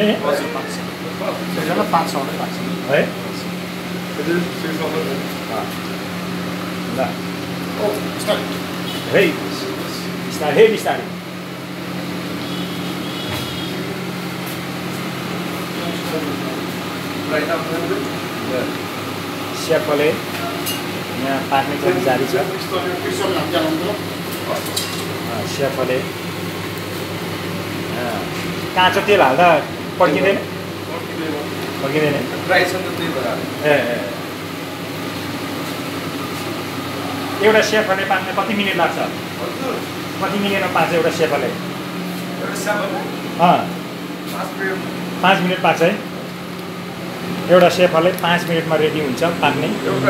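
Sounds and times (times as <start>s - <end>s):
oil deep-frying hiss: 0.9s - 50.0s.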